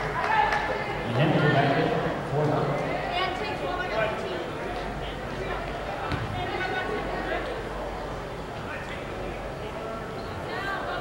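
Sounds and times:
voices echoing in a gym: 0:00.0 - 0:11.0.

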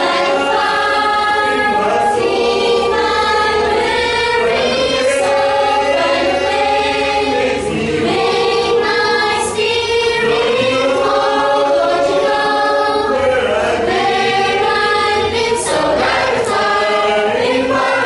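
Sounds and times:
mixed choir singing: 0:00.0 - 0:18.0.

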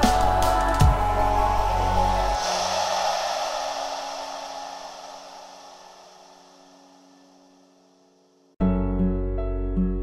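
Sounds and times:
electronic background music: 0:00.0 - 0:07.8.

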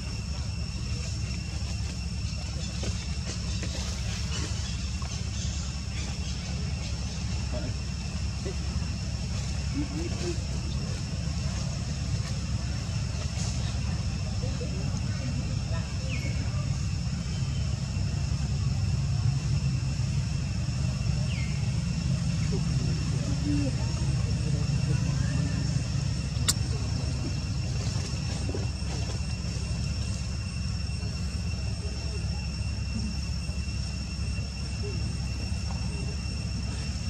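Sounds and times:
low outdoor rumble: 0:00.0 - 0:37.0.

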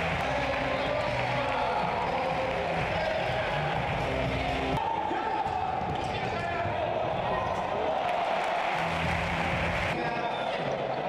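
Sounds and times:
crowd noise in sports hall: 0:00.0 - 0:11.0
ball kicked and bouncing on court: 0:05.4 - 0:06.8.

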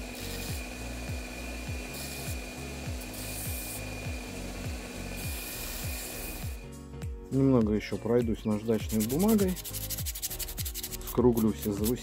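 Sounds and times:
belt grinder whining: 0:00.0 - 0:06.7
steel grinding hiss: 0:00.0 - 0:06.8, 0:08.6 - 0:12.0.

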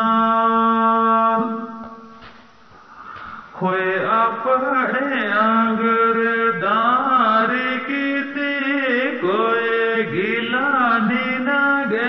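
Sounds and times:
person singing folk song: 0:00.0 - 0:02.3, 0:02.9 - 0:12.0.

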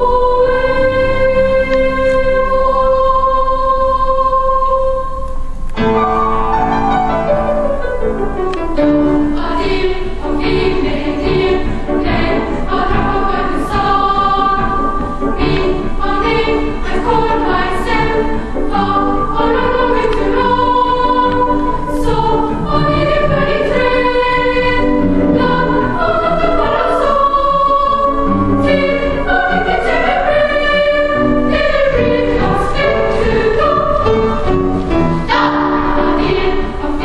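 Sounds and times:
children's choir singing: 0:00.0 - 0:05.8, 0:06.5 - 0:37.0.

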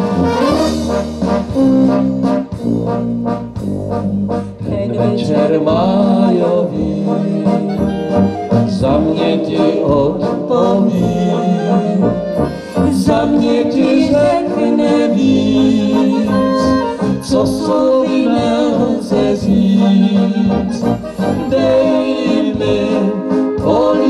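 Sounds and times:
brass band playing: 0:00.0 - 0:24.0.

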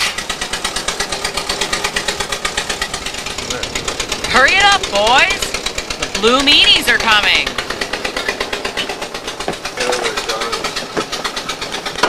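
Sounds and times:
car engine idling: 0:00.0 - 0:12.0
faint voices: 0:03.4 - 0:07.7, 0:09.5 - 0:11.2.

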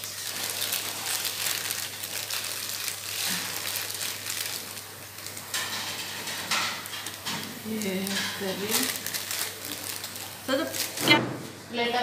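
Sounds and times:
foil wrappers crinkling: 0:00.0 - 0:11.2.

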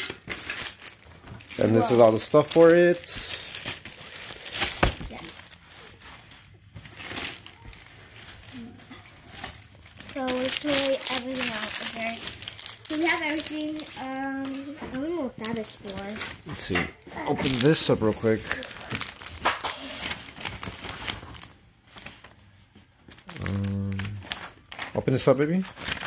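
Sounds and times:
plastic bags crinkling: 0:00.0 - 0:26.0
person talking: 0:01.6 - 0:03.0.

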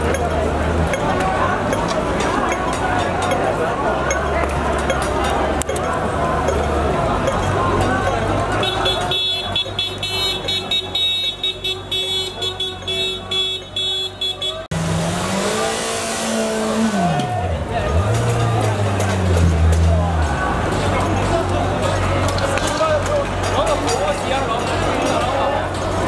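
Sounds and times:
street noise: 0:00.0 - 0:26.0
vehicle engine revving: 0:14.5 - 0:23.7.

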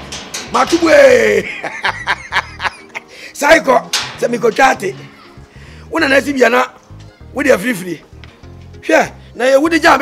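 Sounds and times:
man laughing: 0:01.4 - 0:03.1.

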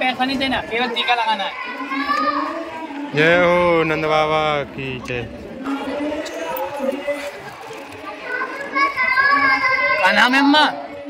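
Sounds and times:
child calling out: 0:08.3 - 0:10.2.

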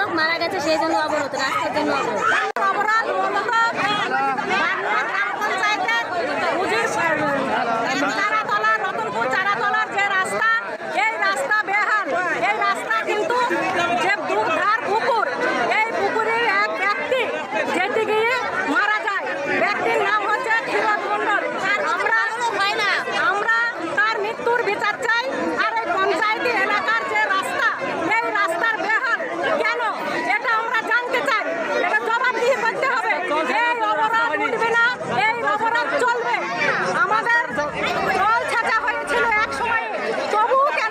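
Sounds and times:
voices chattering: 0:00.0 - 0:40.9.

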